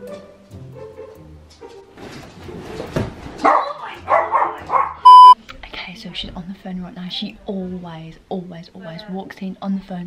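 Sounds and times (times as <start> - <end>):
dog barking: 3.4 - 5.1
loud electronic beep: 5.1 - 5.4.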